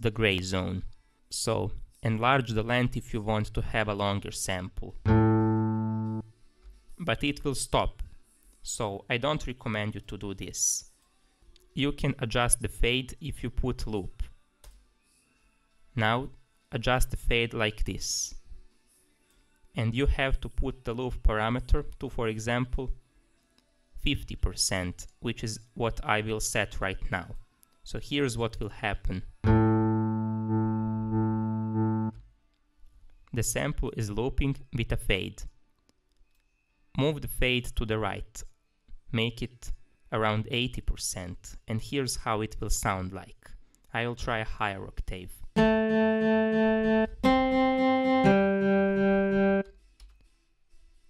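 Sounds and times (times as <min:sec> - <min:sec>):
buzzy sustained guitar tone: 0:05.1 - 0:06.2, 0:29.4 - 0:32.2, 0:45.6 - 0:49.6.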